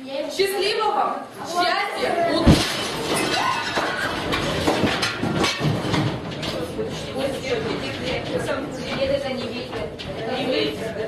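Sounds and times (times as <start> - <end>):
chairs and desks moving: 2.0 - 11.0
knocks and clatter: 2.3 - 11.0.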